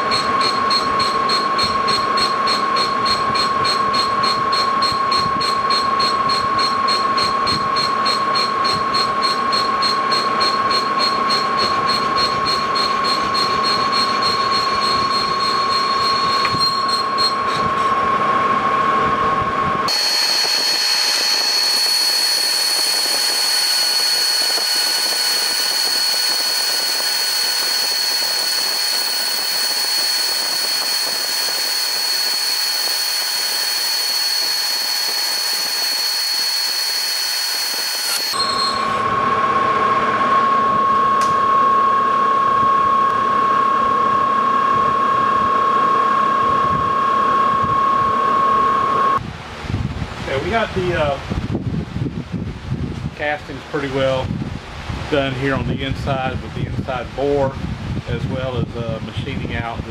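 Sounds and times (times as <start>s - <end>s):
lathe high-pitched whine: 0.0s - 49.2s.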